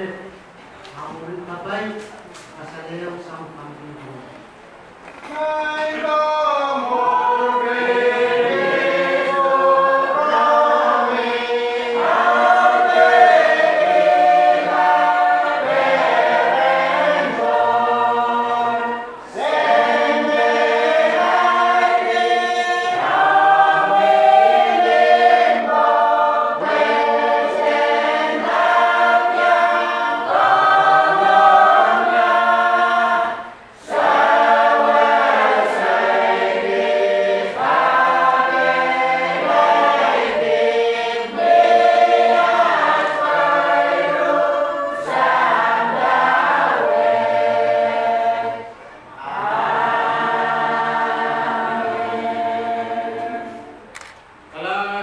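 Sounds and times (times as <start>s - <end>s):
choir singing a hymn: 5.3s - 53.9s.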